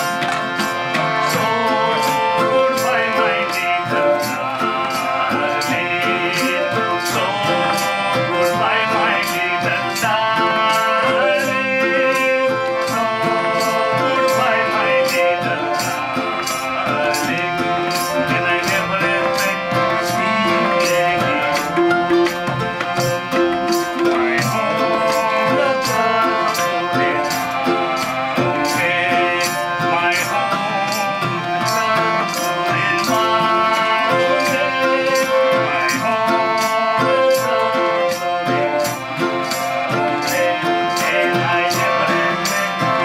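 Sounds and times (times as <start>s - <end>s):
guitar: 0.0s - 43.0s
hand drums beating: 0.0s - 43.0s
harmonium chords: 0.0s - 43.0s
person singing: 0.0s - 43.0s.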